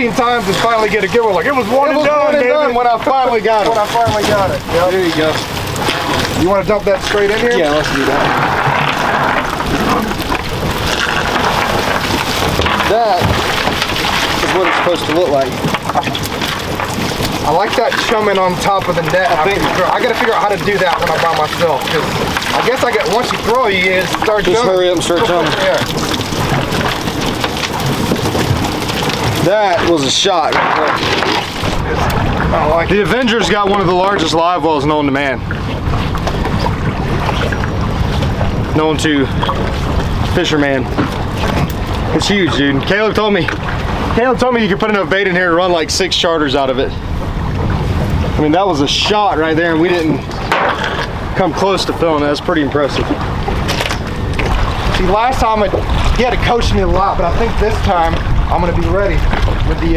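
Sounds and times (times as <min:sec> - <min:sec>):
fish flapping and splashing: 0:00.0 - 0:59.9
wind buffeting microphone: 0:00.0 - 0:59.9
water draining: 0:02.5 - 0:46.8.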